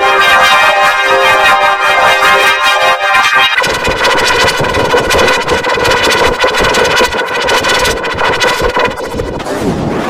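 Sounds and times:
distorted buzzing drone: 0.0 - 10.0.

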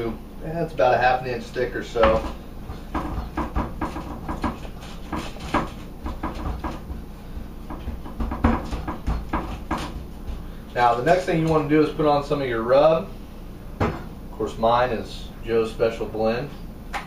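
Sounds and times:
hands patting meat in pan: 2.0 - 10.5.

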